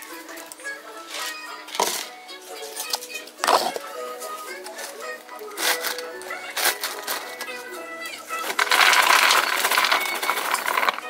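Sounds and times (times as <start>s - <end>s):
popcorn rattling into plastic bowl: 1.1s - 2.2s, 4.7s - 11.0s.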